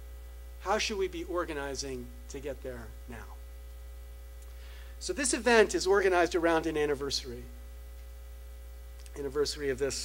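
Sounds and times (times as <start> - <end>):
electrical mains hum: 0.0 - 10.0
man speaking: 0.6 - 3.4, 5.0 - 7.5, 9.1 - 10.0.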